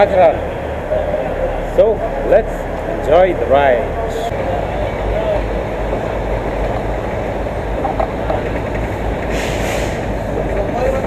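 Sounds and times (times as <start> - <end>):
train rumbling and rattling on rails: 2.6 - 11.0
brief hiss: 9.3 - 10.1.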